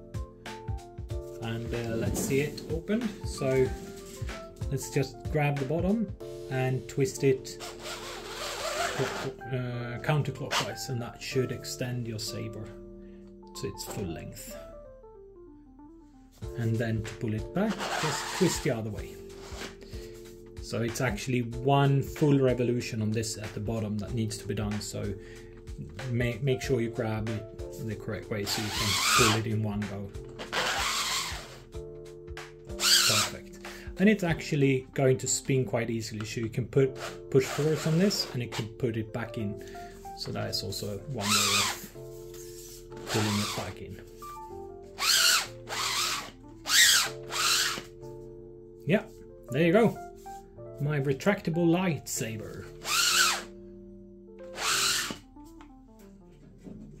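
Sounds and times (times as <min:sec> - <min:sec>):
background music: 0:00.0 - 0:57.0.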